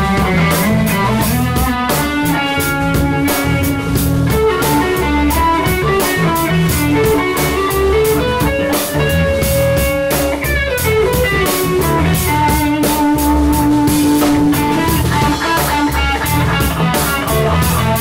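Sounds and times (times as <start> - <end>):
drum kit with cymbal beat: 0.0 - 18.0
electric bass: 0.0 - 18.0
electric guitar held notes: 0.0 - 18.0.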